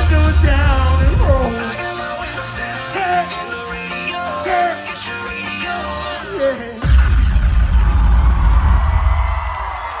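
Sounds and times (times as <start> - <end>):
live hip-hop music with heavy bass: 0.0 - 9.1
audience cheering: 7.5 - 10.0.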